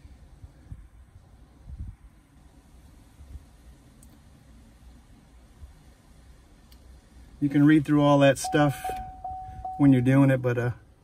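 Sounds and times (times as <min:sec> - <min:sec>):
faint low rumble: 0:04.7 - 0:10.3.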